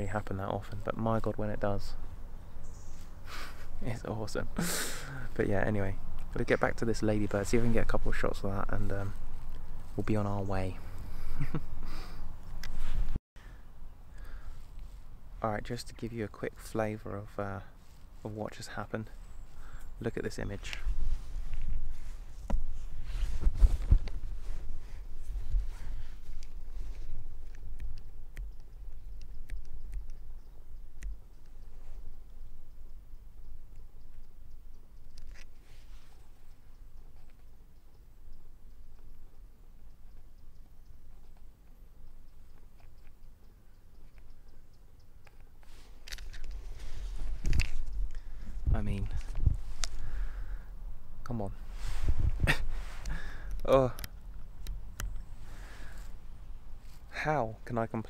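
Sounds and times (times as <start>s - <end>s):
breathy close-up sounds: 3.0s - 5.4s, 10.8s - 15.3s, 19.4s - 20.0s, 21.2s - 27.8s, 45.3s - 57.4s
faint clicks and rustles: 19.2s - 32.9s, 38.6s - 50.3s
microphone handling noise: 20.6s - 28.0s, 45.6s - 50.3s, 51.5s - 56.2s
wind rumble: 20.6s - 31.2s, 46.3s - 56.9s.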